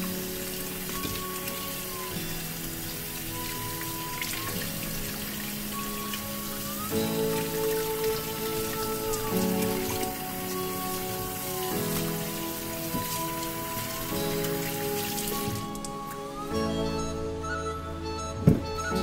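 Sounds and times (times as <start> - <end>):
tap water splashing: 0.0 - 2.1, 2.9 - 16.2
background music with sustained chords: 0.0 - 19.0.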